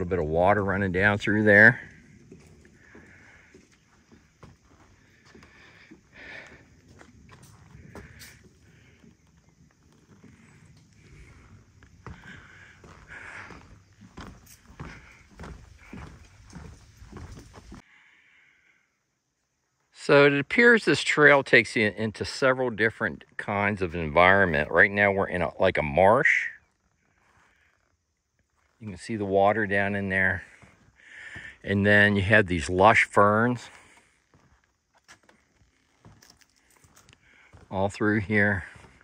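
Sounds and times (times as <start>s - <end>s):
footsteps on wooden boardwalk: 0.0s - 17.9s, 26.7s - 39.0s.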